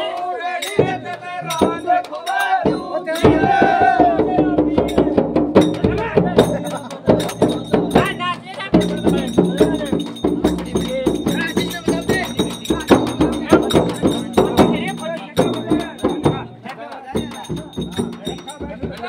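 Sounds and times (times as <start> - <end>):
jingling percussion: 0.0 - 19.0
men singing together: 0.0 - 19.0
frame drum beating: 0.7 - 19.0.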